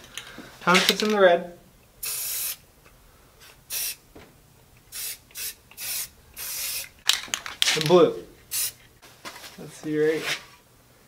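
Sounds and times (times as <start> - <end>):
spray paint can hissing: 2.0 - 2.6, 3.4 - 4.0, 4.9 - 7.0, 8.5 - 8.8.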